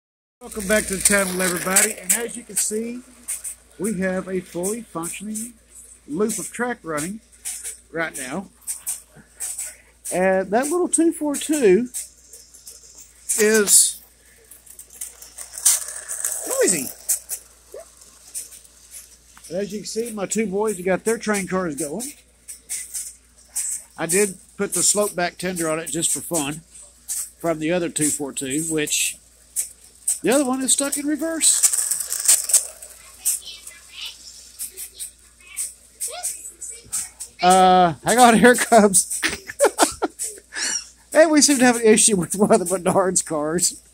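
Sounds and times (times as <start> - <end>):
toy train clicking and rattling: 0.4 - 43.9.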